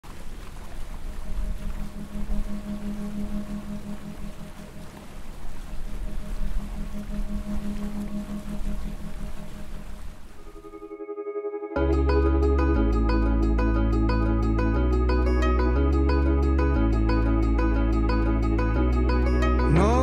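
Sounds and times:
water rushing in wake: 0.0 - 10.9
boat engine droning: 0.1 - 11.2, 11.8 - 20.0.

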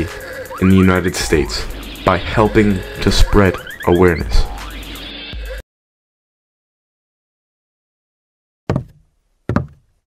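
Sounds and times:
knocks: 8.7 - 9.8.

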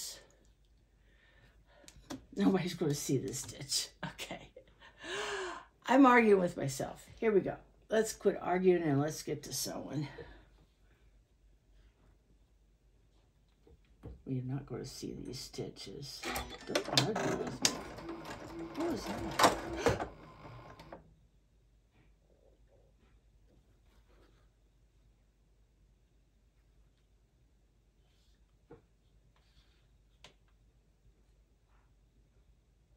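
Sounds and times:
sewing machine stitching: 16.2 - 21.0.

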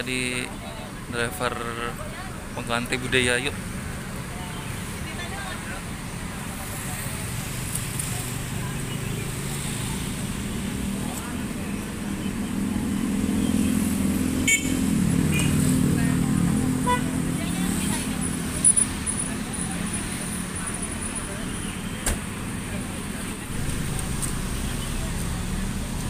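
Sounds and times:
bus engine idling: 16.0 - 26.0.

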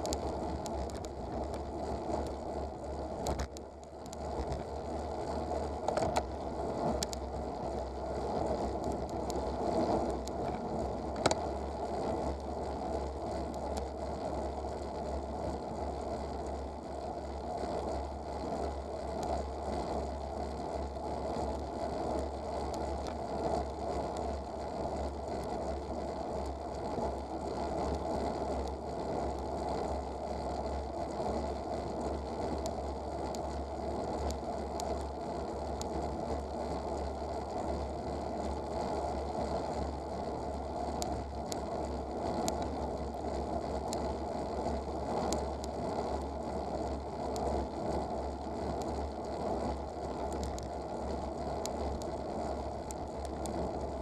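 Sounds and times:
small clicks and rattles: 0.0 - 54.0.

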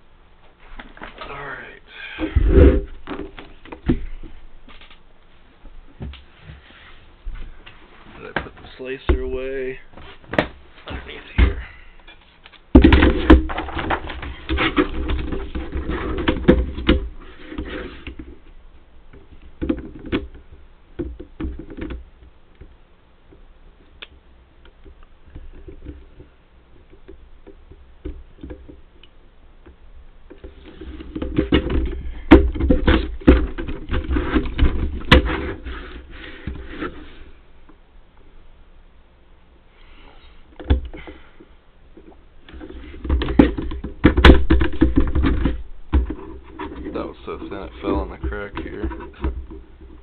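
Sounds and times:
plastic clattering knocks: 12.7 - 17.1, 31.1 - 35.4, 42.6 - 46.8.

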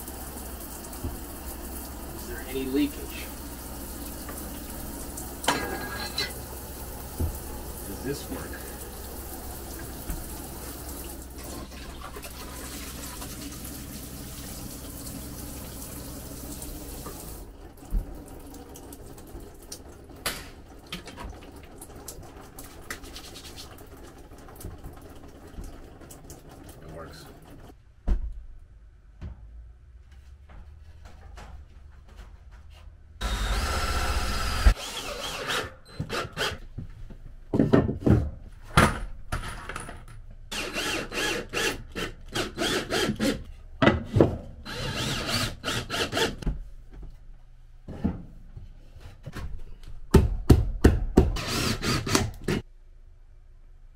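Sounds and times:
shower water spraying: 0.0 - 19.9, 22.0 - 25.1
cordless drill driving screw: 33.2 - 36.6, 40.5 - 43.4, 44.7 - 46.4, 51.4 - 52.4.

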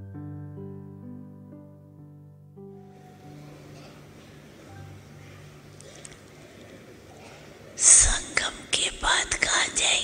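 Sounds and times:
person whispering: 7.8 - 10.0.

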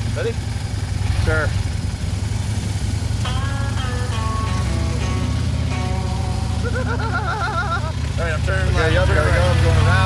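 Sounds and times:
motorcycle engines rumbling: 0.0 - 10.0
background music held notes: 3.2 - 7.4
person laughing: 6.3 - 8.1.

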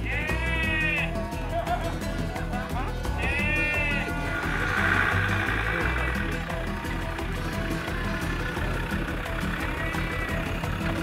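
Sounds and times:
background music with a beat: 0.0 - 11.0
sheep bleating: 9.0 - 11.0.

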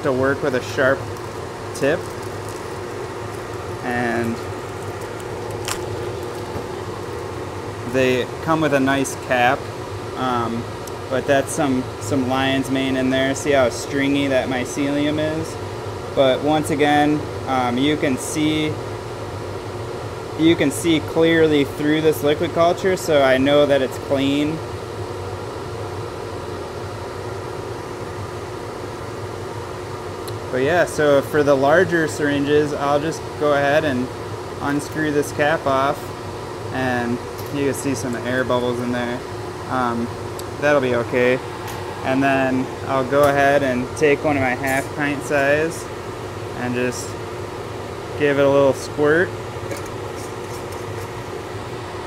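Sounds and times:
blower fan hiss: 0.0 - 52.0
low even hum: 0.0 - 52.0.

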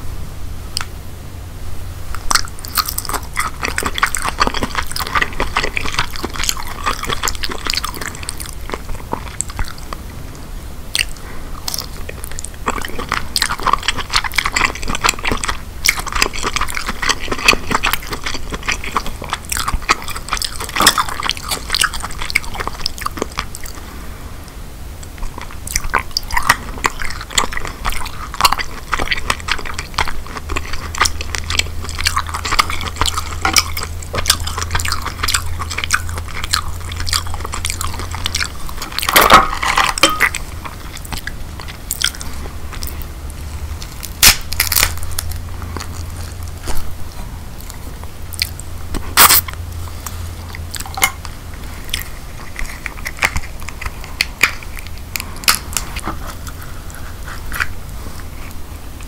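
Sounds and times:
close chewing and mouth sounds: 0.7 - 1.0, 2.1 - 59.0
crab shell cracking: 43.9 - 46.8, 50.6 - 58.0.

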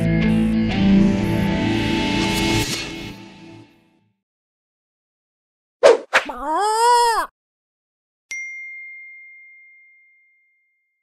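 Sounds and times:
bell-like chime: 8.3 - 11.0.

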